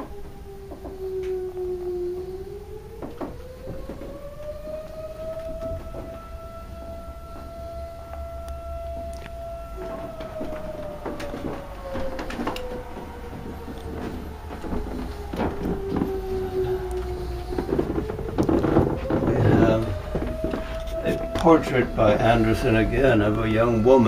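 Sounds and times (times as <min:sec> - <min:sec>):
siren-like tone: 0:00.0 - 0:24.0.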